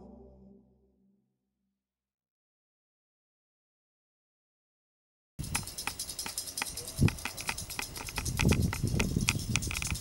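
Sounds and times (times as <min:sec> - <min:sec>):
patter of light clicks and taps: 0:05.5 - 0:10.0.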